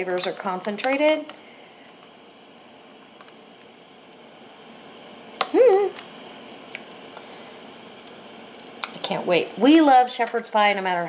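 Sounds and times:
gas burner hissing: 0.0s - 11.0s.

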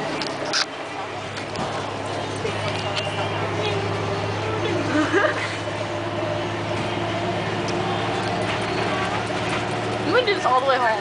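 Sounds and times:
bus engine droning: 0.0s - 11.0s.

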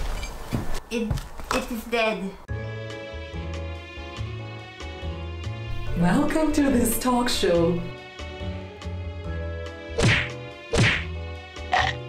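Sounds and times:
comic impact whacks: 10.0s - 11.1s.

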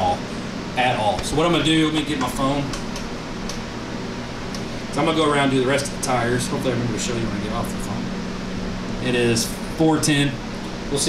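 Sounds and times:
machine hum and hiss: 0.0s - 11.0s.

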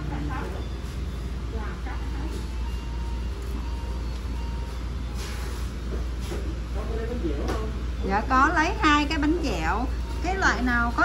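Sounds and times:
faint music: 0.0s - 11.0s.

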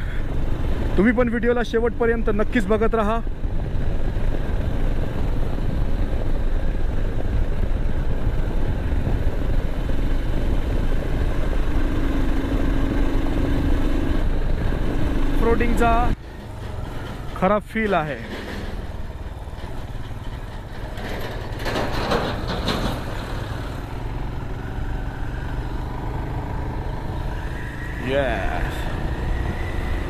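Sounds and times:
wind rush on microphone: 3.2s - 16.2s, 27.2s - 30.0s
motorcycle engine running: 3.2s - 16.7s, 18.4s - 30.0s.

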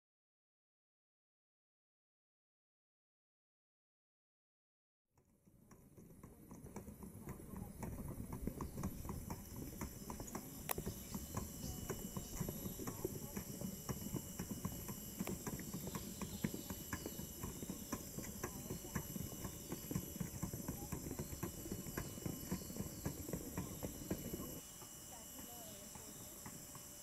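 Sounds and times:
footsteps on paved path: 6.0s - 27.0s.

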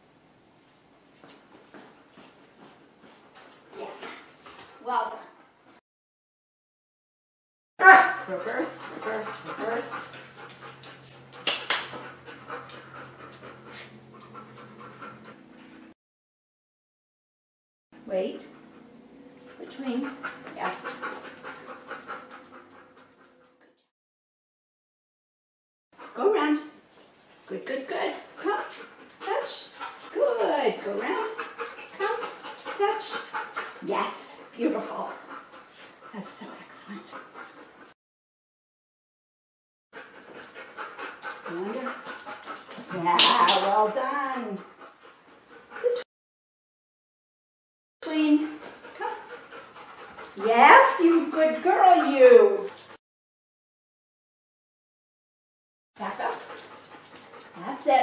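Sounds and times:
dog vocal sound: 7.8s - 15.4s, 48.4s - 53.0s
dog panting: 8.1s - 15.9s, 18.4s - 23.6s, 26.0s - 38.0s, 40.0s - 46.1s, 48.3s - 53.0s, 56.0s - 58.0s.

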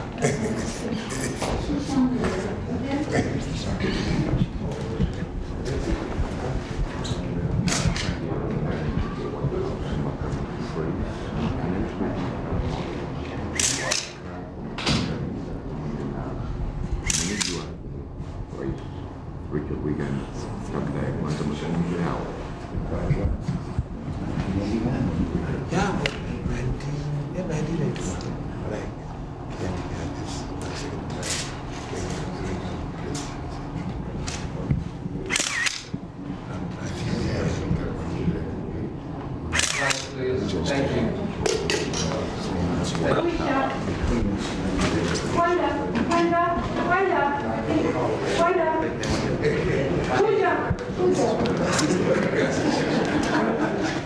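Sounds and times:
indistinct chatter of voices: 0.0s - 54.0s
camera shutters clicking: 13.6s - 14.2s, 17.0s - 17.7s, 35.3s - 35.9s, 39.6s - 40.2s.

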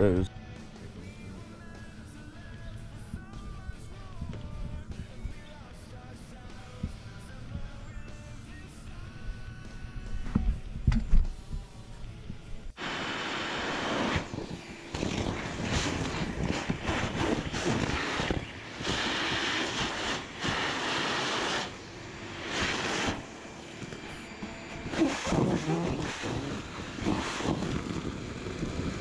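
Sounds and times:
background music: 0.0s - 12.8s
gutter vacuum suction rushing: 12.8s - 29.0s.

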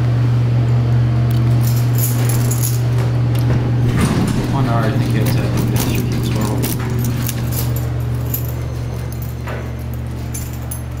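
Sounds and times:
steady low hum: 0.0s - 11.0s
keys jangling: 1.3s - 11.0s.

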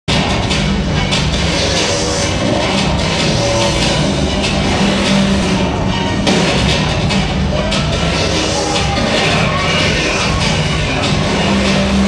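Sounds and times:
drums: 0.0s - 12.0s
distorted guitars: 0.1s - 12.0s.

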